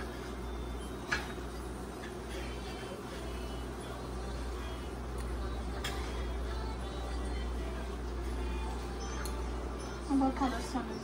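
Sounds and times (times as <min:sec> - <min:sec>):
kitchen background hum: 0:00.0 - 0:11.0.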